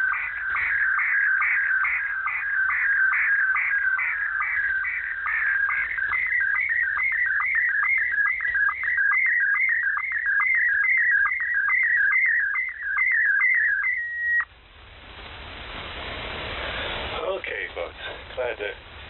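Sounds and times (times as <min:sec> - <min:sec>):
warbling electronic chirping tone: 0:00.0 - 0:14.4.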